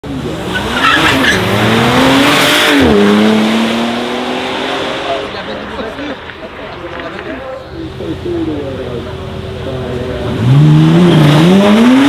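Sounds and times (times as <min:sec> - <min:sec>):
car engine revving hard: 0:00.2 - 0:05.4, 0:09.9 - 0:12.0
tyre squeal: 0:00.5 - 0:01.4.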